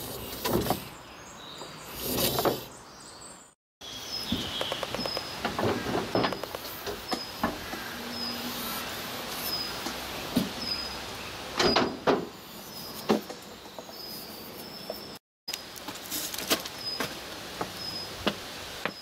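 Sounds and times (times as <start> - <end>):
knocks and clatter of toy train: 4.6 - 7.6.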